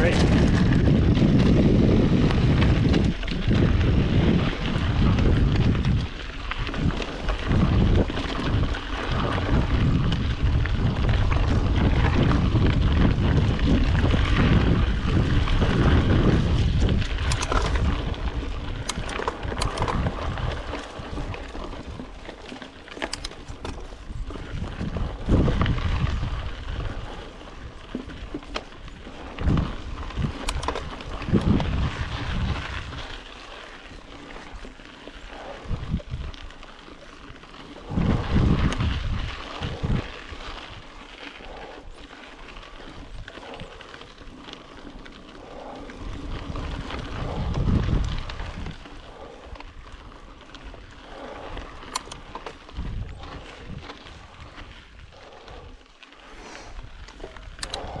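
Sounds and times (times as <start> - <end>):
bike clicks and knocks: 0.0 - 55.1
bike tyres rolling on dirt: 0.0 - 58.0
wind buffeting microphone: 0.0 - 58.0.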